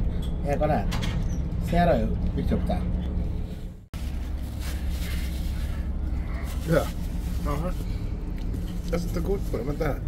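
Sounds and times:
ferry engines droning: 0.0s - 10.0s.

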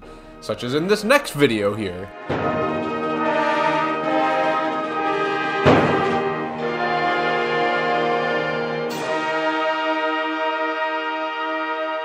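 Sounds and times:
wind band sustained chords: 0.0s - 12.0s
loud percussion stroke: 2.2s - 6.8s.

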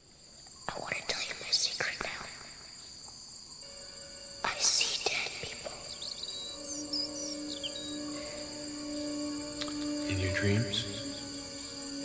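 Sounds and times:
crickets chirring: 0.0s - 12.0s
person whispering: 4.4s - 5.8s.

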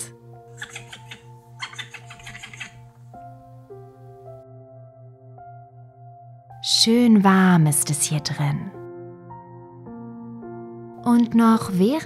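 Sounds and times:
soft ambient chords: 2.7s - 12.0s.

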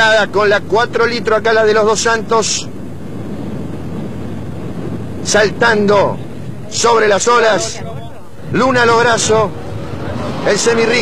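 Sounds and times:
wind noise: 0.0s - 11.0s
steady engine drone: 2.6s - 11.0s.

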